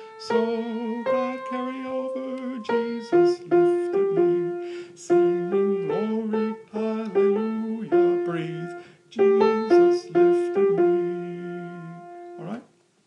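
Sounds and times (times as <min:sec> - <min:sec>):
piano notes: 0:00.0 - 0:12.7.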